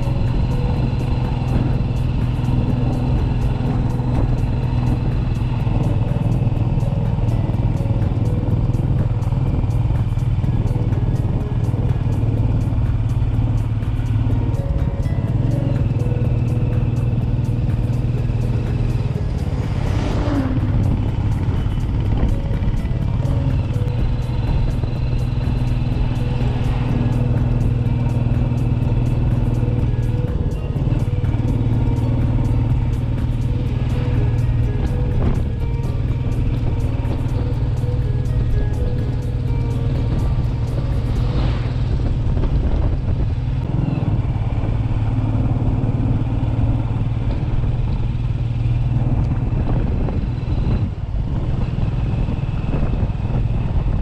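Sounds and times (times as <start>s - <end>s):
music with low bass line: 0.0s - 43.7s
motorcycle engine: 0.0s - 54.0s
wind noise: 0.0s - 54.0s
truck whooshing past: 13.9s - 54.0s.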